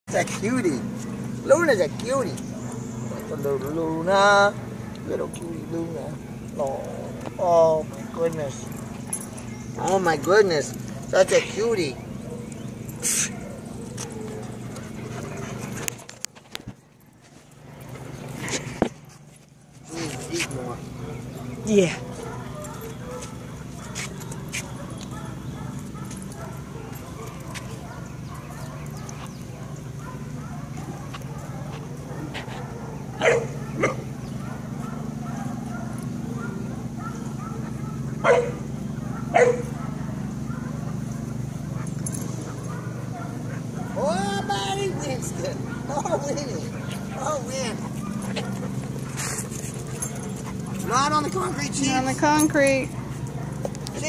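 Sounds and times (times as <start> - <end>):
dog barking: 12.2 - 14.7, 20.0 - 54.0
dog snorting: 46.6 - 51.6.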